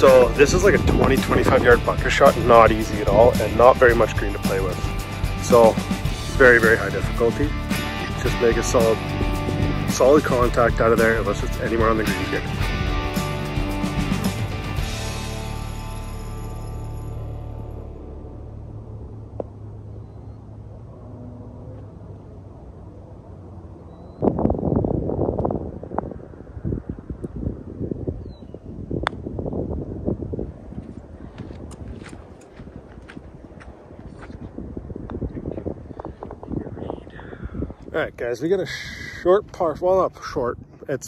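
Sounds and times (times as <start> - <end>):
voices: 0.0 - 4.8, 5.4 - 9.0
background music: 0.0 - 19.2
low outdoor noise: 16.7 - 24.6.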